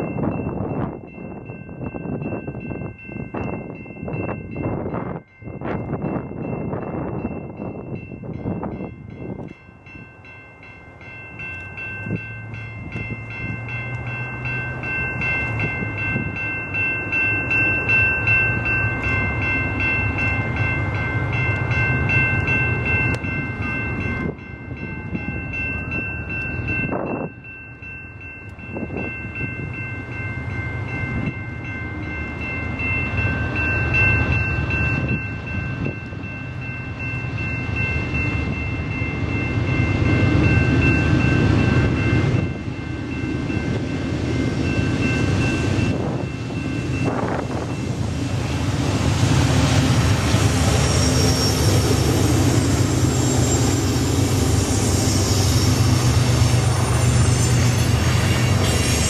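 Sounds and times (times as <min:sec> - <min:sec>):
level crossing bell ringing: 0:00.0 - 0:48.0
diesel locomotive engine drone: 0:00.0 - 0:59.0.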